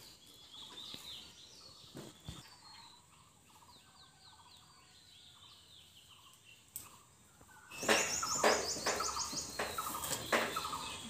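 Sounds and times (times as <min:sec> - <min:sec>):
birds chirping: 0:00.0 - 0:11.0
low rapid bird trill: 0:05.3 - 0:11.0.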